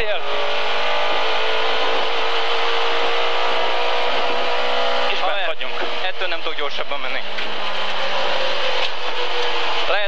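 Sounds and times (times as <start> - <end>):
car engine running: 0.0 - 10.0
road and wind noise: 0.0 - 10.0.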